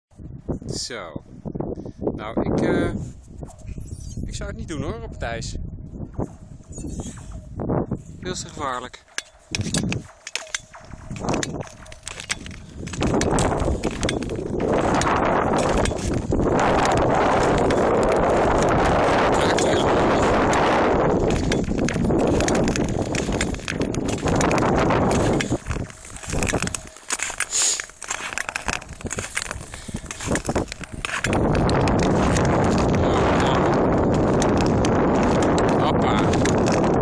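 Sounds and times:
ice cracking: 10.0 - 37.0
ice skate blades scraping ice: 25.0 - 31.4.

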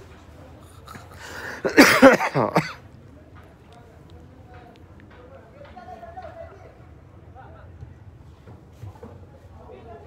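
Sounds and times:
person clearing throat: 0.9 - 2.8.

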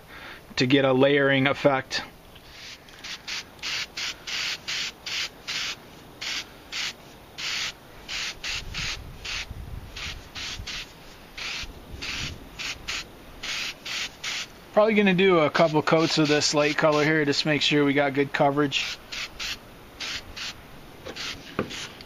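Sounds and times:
spray paint can hissing: 2.5 - 14.5, 18.8 - 22.0.

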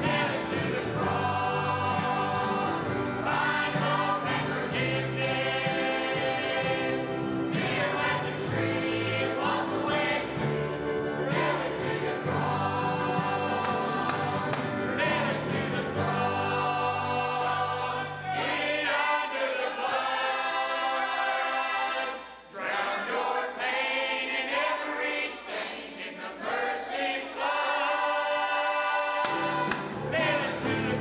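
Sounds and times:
band accompaniment: 0.0 - 18.3
choir singing a gospel hymn: 0.0 - 31.0.

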